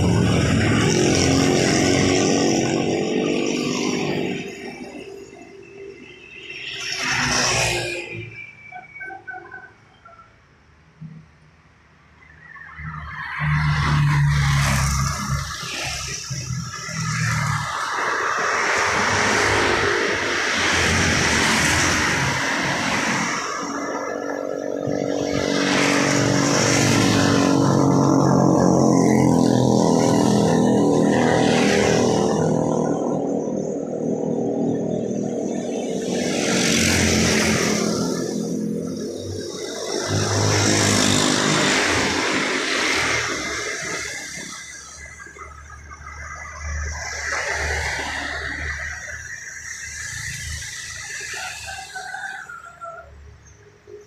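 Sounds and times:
steady engine hum: 0.0s - 7.2s, 14.5s - 54.0s
motorcycles passing: 0.0s - 9.9s, 12.2s - 54.0s
cars passing with tyre hiss: 0.0s - 54.0s.

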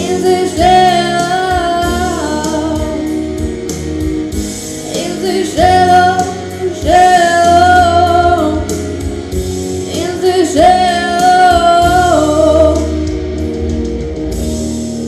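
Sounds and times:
woman singing into a microphone: 0.0s - 3.3s, 4.8s - 9.1s, 9.8s - 13.2s
backing music with guitar and bass: 0.0s - 15.0s.

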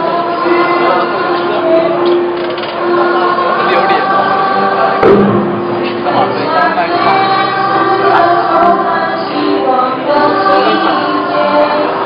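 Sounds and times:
choir singing: 0.0s - 2.0s, 2.8s - 12.0s.

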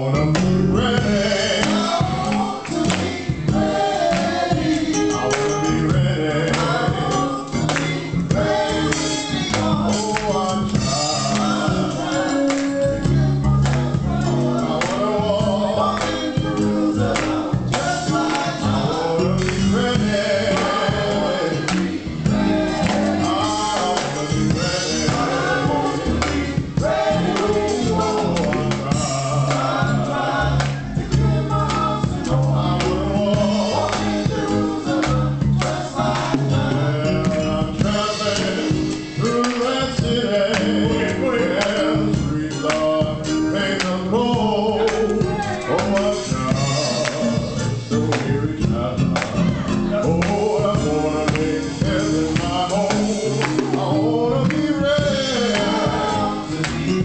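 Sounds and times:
drum kit strokes: 0.0s - 57.0s
low keyboard notes: 0.0s - 57.0s
men's choir singing in harmony: 0.0s - 57.0s.

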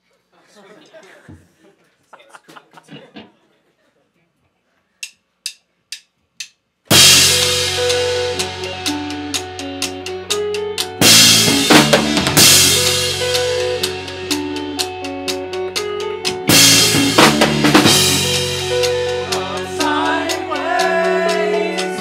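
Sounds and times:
drumstick clicks: 5.0s - 6.7s
rock band playing: 6.9s - 22.0s.

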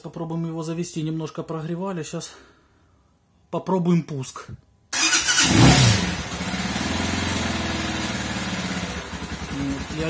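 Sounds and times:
motorcycle engine idling: 6.1s - 10.0s.

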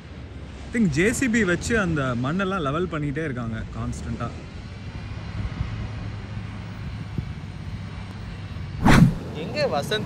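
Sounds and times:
loud whoosh: 8.8s - 9.2s.

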